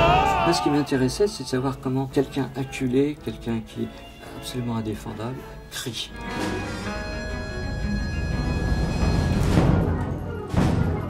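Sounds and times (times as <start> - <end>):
loud percussion strikes: 7.7 - 11.0.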